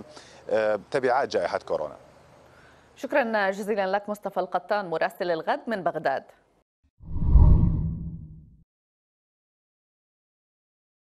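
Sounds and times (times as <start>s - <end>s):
deep whoosh: 7.0s - 8.6s.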